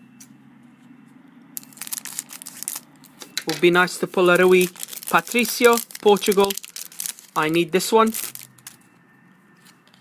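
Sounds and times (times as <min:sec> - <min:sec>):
scissors cutting foil packet: 0:01.6 - 0:08.8.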